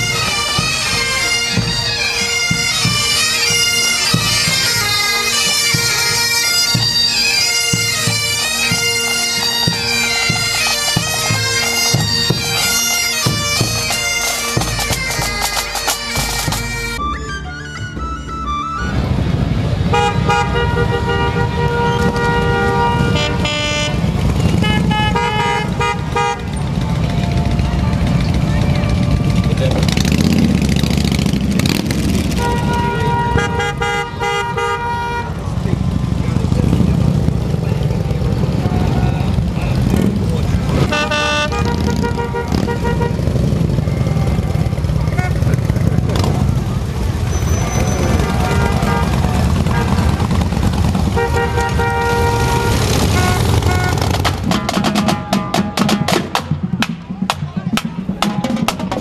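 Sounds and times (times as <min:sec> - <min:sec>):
horns honking: 0:00.0 - 0:59.0
motorcycles riding past: 0:18.5 - 0:57.6.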